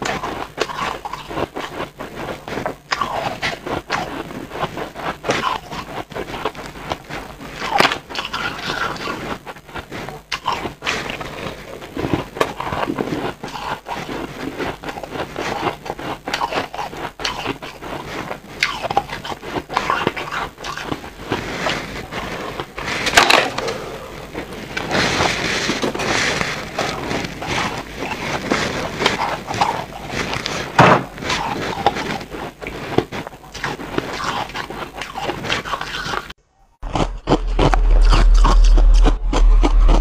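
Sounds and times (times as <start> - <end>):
crunchy chewing of ice: 0.0 - 40.0.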